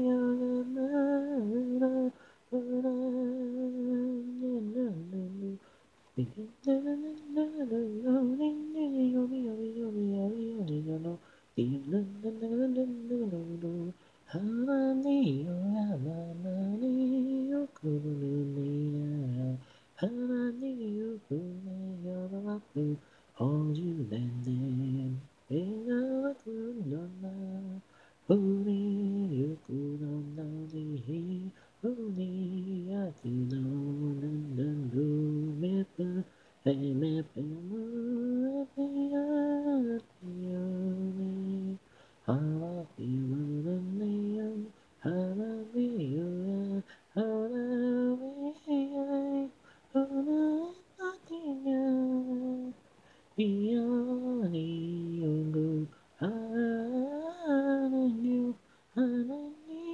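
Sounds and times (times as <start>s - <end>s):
woman singing a cappella: 0.0s - 59.9s.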